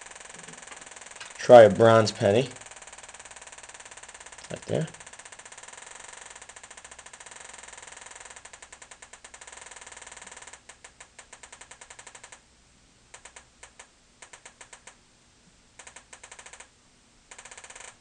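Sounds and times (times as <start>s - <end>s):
metal detector rapid ticking: 0.0s - 12.4s, 15.8s - 16.7s, 17.3s - 18.0s.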